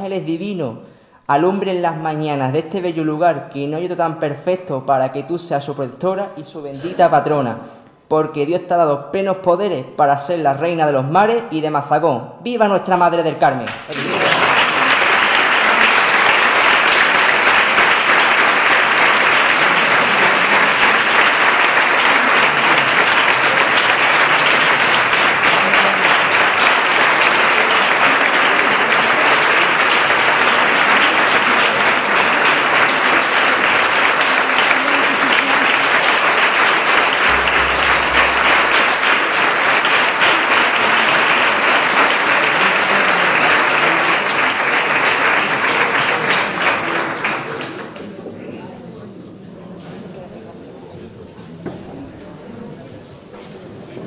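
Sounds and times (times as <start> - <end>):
large audience applauding: 13.7 - 48.2.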